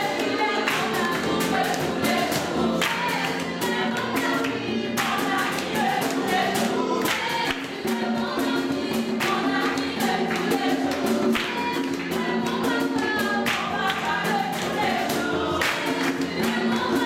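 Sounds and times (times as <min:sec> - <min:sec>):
choir singing: 0:00.0 - 0:17.0
steady percussive beat: 0:00.0 - 0:17.0.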